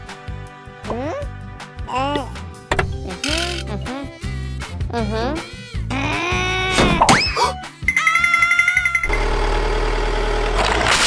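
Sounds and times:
car engine running: 0:09.0 - 0:11.0.

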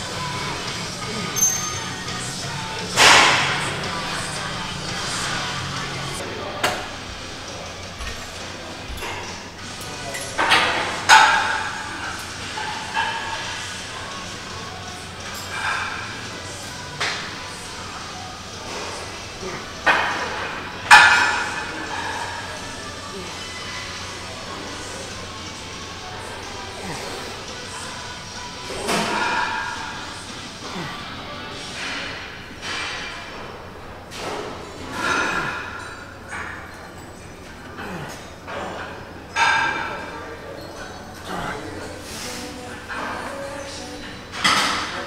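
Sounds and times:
gym background noise: 0:00.0 - 0:45.0.

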